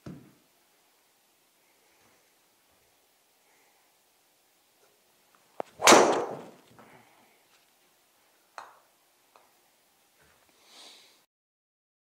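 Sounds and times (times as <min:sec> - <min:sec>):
ball smacking into screen: 0:05.7 - 0:06.6
golf club hitting ball: 0:05.7 - 0:06.6.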